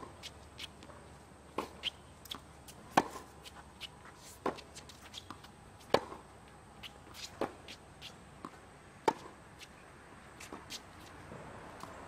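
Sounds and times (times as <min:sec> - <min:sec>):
racket hitting tennis ball: 0:00.0 - 0:12.0
sneakers scuffing on court: 0:00.0 - 0:12.0.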